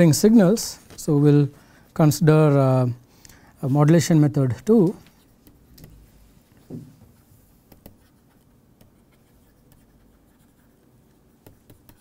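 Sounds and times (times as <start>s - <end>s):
low room hum: 0.0s - 12.0s
stylus tapping on tablet screen: 7.7s - 8.1s, 8.8s - 9.9s, 11.4s - 12.0s.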